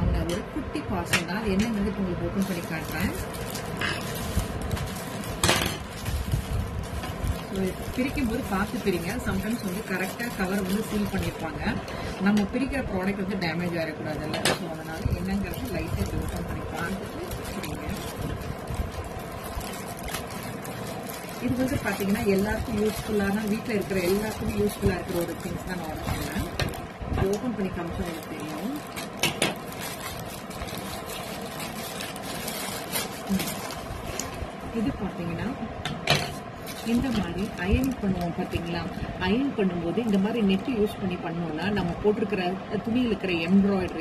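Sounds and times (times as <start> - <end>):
woman talking: 0.0 - 4.0, 7.4 - 18.2, 21.4 - 28.9, 33.3 - 33.8, 34.7 - 35.8, 36.8 - 44.0
plastic mailer crinkling: 1.8 - 12.1, 13.1 - 35.5, 36.3 - 39.0.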